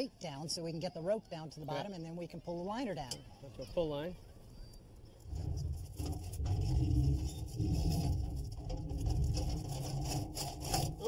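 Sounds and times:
rope rubbing: 5.2 - 11.0
weight scraping inside chimney: 5.2 - 11.0.

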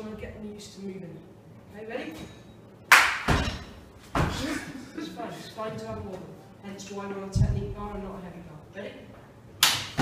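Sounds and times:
sharp slap: 2.9 - 4.4, 9.6 - 10.0.

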